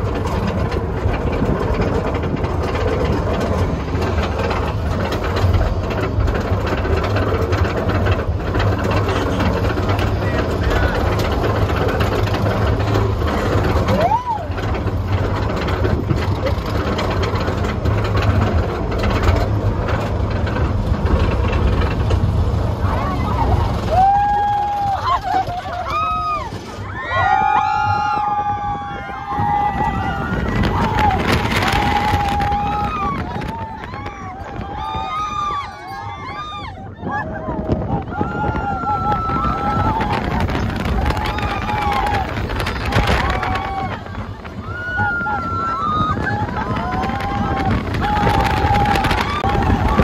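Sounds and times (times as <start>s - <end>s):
rapid clattering from track: 0.0s - 26.9s, 27.8s - 36.5s, 37.2s - 50.0s
riders screaming and whooping: 0.0s - 50.0s
roller coaster lift rumble: 0.0s - 50.0s.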